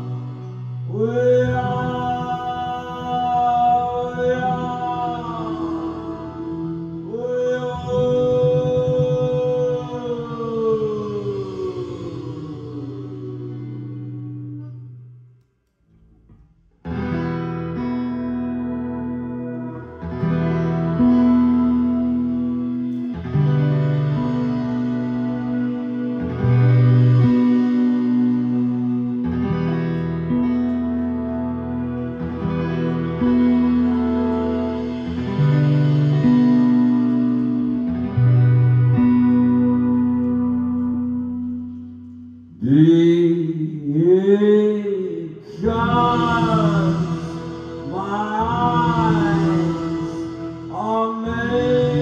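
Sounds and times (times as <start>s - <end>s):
droning effects-laden chords: 11.0s - 42.6s
strummed acoustic guitar: 16.8s - 52.0s
man singing chant-like note: 42.6s - 52.0s.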